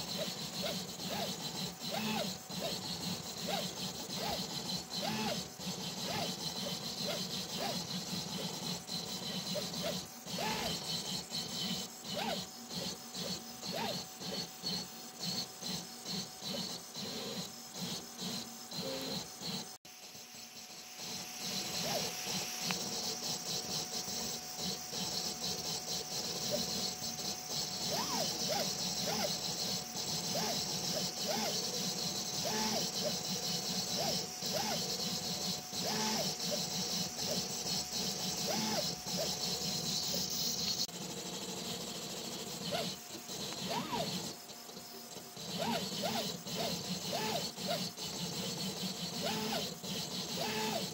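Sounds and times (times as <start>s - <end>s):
stepper motors whining: 0.0s - 50.9s.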